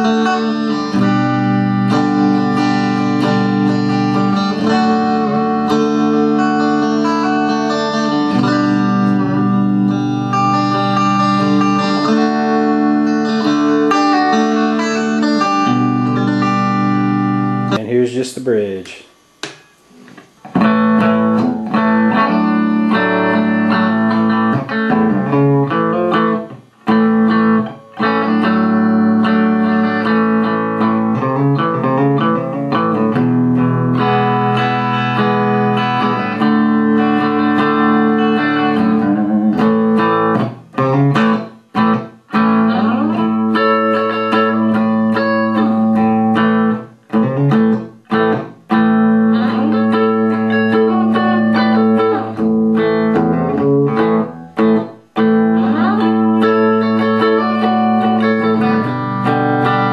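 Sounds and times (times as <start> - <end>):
electric guitar through amp: 0.0 - 17.8, 19.5 - 59.9.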